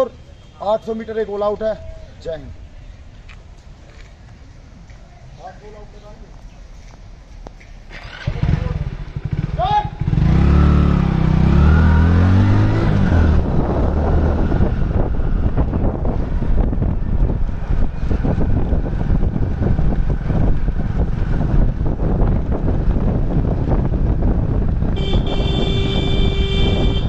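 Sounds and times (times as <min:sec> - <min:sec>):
motorcycle-like engine running: 0:07.9 - 0:27.0
wind buffeting microphone: 0:10.3 - 0:27.0.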